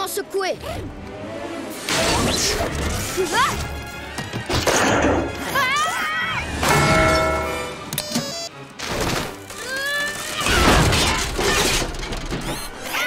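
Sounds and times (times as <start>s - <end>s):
orchestral film music: 0.0s - 12.0s
church bell clanging: 6.7s - 7.8s.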